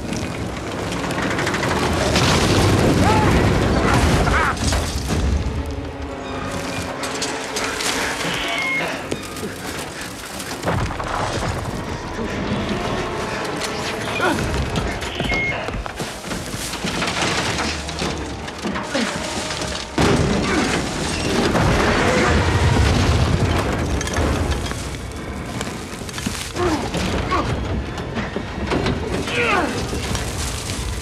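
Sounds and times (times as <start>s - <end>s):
film score music: 0.0s - 31.0s
explosions booming: 20.0s - 28.0s.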